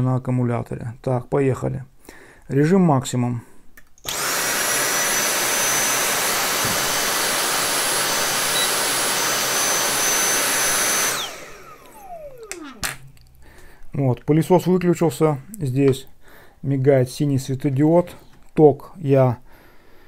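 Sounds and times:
cordless vacuum whining: 4.0s - 13.6s.

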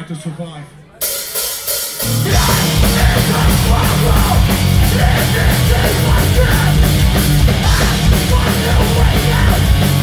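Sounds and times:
drums and cymbals crashing: 1.0s - 10.0s
bass and electric guitars: 2.0s - 10.0s.

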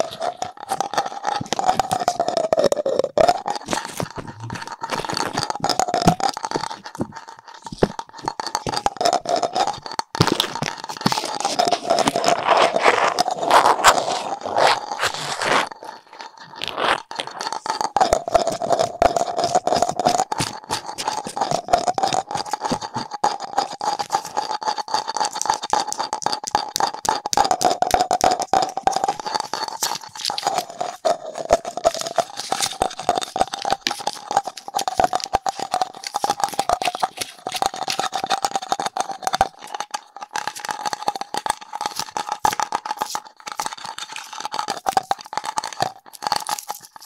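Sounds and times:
scratching and tapping plastic: 0.0s - 47.0s.

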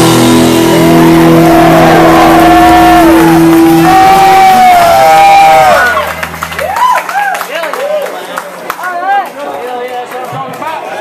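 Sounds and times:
distorted guitar chord: 0.0s - 6.7s.

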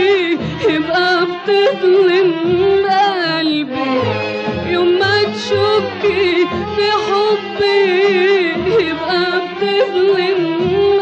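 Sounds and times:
woman singing with vibrato: 0.0s - 4.0s, 4.6s - 11.0s
melodic instruments accompanying: 0.0s - 11.0s.

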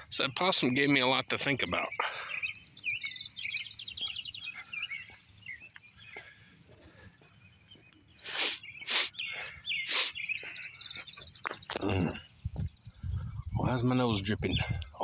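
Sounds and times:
songbird trilling and chirping: 0.0s - 15.0s
person sniffing: 8.2s - 10.2s.

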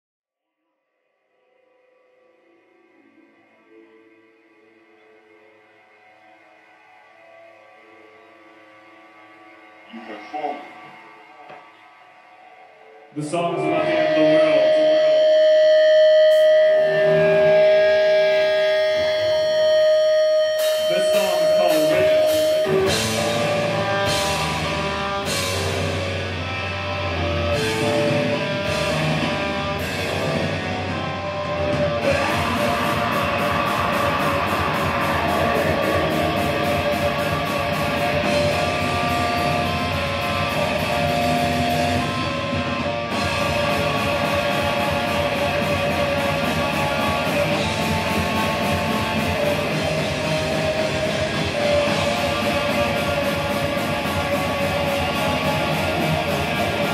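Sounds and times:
distorted electric guitars: 12.8s - 56.9s
heavy metal band playing: 13.2s - 56.9s
drums and cymbal strikes: 14.9s - 56.9s.

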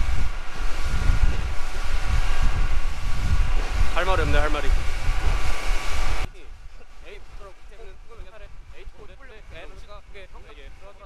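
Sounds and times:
motorboat engine running: 0.0s - 8.0s
wind buffeting microphone: 0.0s - 11.0s.

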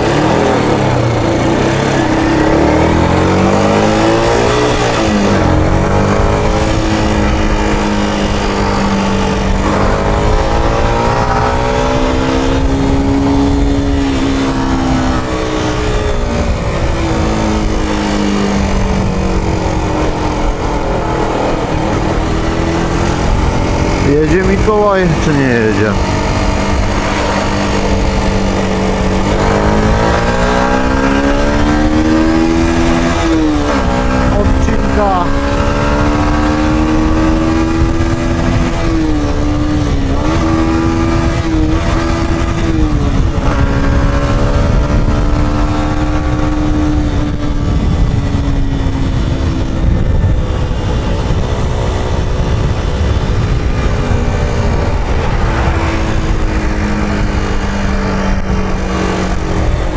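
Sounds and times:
motorcycle engine revving: 0.0s - 59.9s
wind rushing over microphone: 0.0s - 59.9s.

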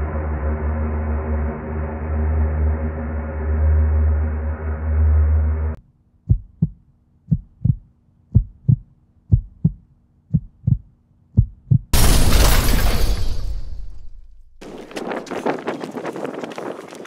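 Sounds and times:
low droning music chord: 0.0s - 5.8s
heartbeat thumps: 6.3s - 11.9s.

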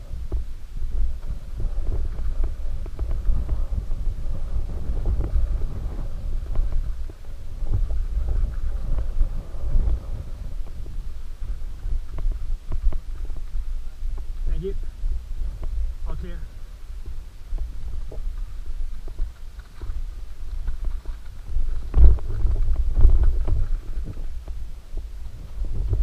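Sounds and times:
rumble of tyres and wind: 0.0s - 26.0s.

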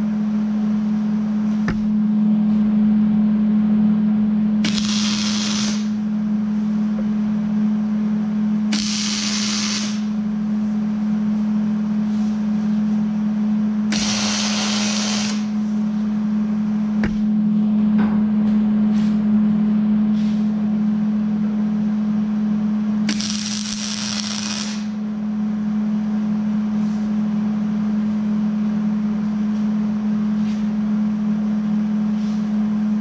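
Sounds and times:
steady low hum: 0.0s - 33.0s
welder arcing on steel: 4.6s - 6.0s, 8.7s - 10.2s, 13.9s - 15.6s, 23.1s - 25.0s.

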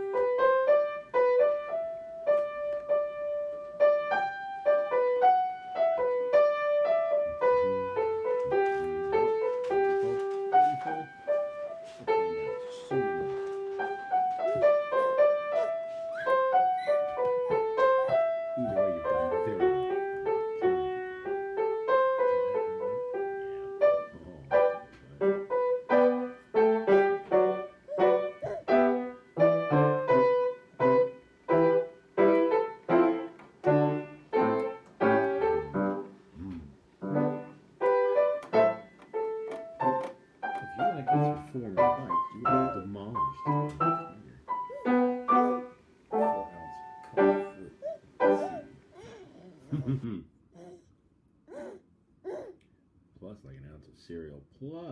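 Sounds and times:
solo piano: 0.0s - 50.2s.

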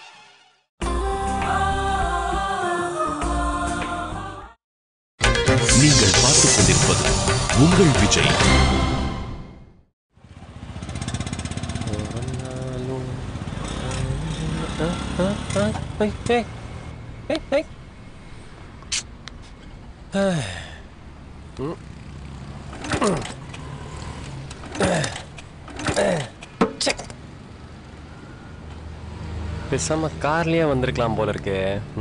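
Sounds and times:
motorcycle engine puttering: 10.2s - 16.4s, 21.6s - 27.4s
man's short vocal sounds: 21.5s - 21.8s.

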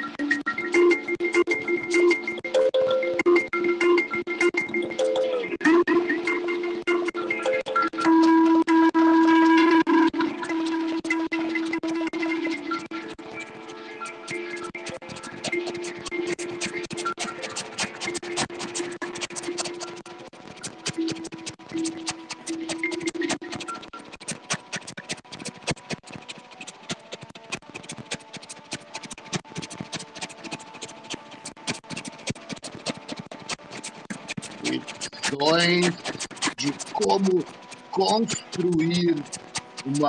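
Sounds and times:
scratchy electronic crackles: 0.0s - 40.0s.

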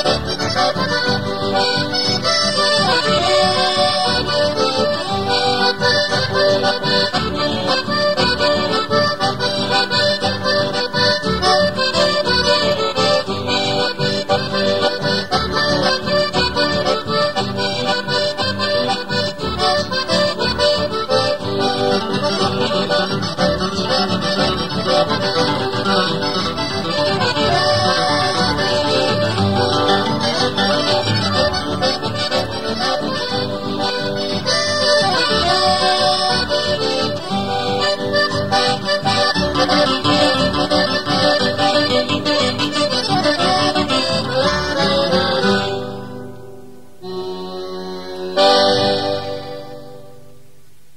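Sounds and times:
accordion melody: 0.0s - 50.6s
guitar accompaniment: 0.0s - 50.9s.

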